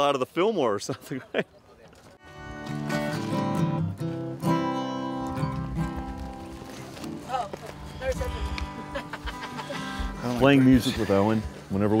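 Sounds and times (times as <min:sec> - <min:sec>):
guitar with ringing notes: 0:02.2 - 0:06.7.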